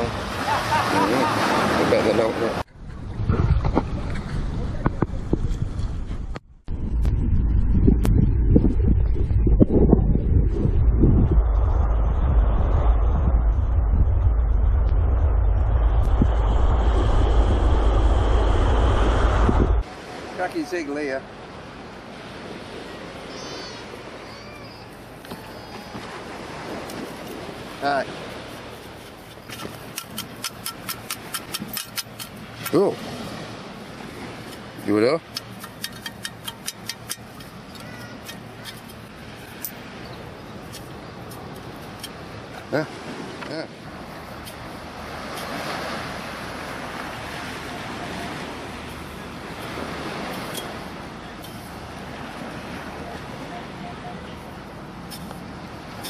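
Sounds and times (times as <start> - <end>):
surf: 0.0 - 6.4, 8.0 - 56.0
wind: 0.0 - 56.0
rattling clicks: 35.3 - 39.0.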